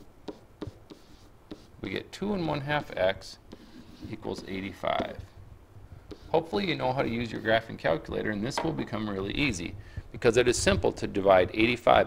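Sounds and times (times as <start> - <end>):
stylus tapping and scratching: 0.0 - 5.3, 6.1 - 6.6.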